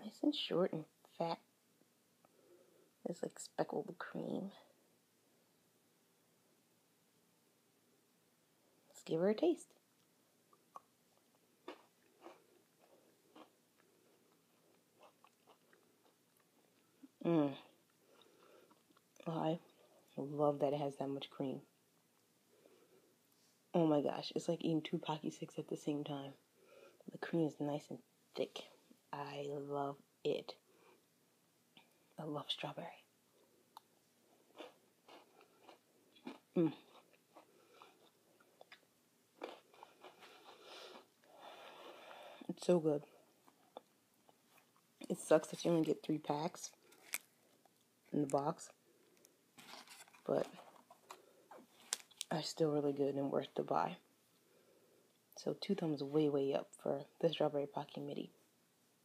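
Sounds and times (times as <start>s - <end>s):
crunchy biscuit chewing: 10.5s - 17.0s, 33.8s - 42.1s, 46.6s - 48.4s, 49.0s - 52.3s.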